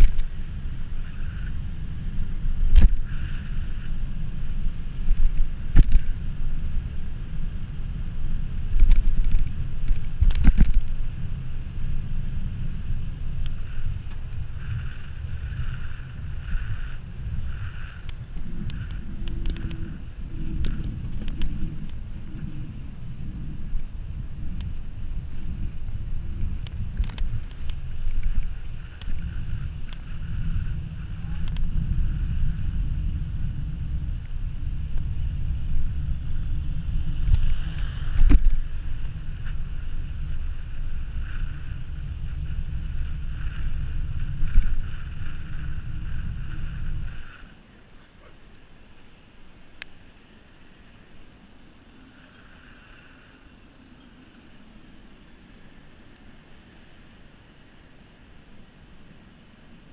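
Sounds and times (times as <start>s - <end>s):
low road rumble: 0.0s - 59.9s
wind rushing over microphone: 0.0s - 59.9s.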